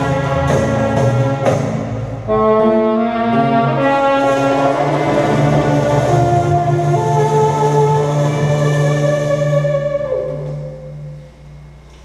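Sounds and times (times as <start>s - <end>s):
bass line: 0.0s - 12.0s
saxophone melody: 0.0s - 12.0s.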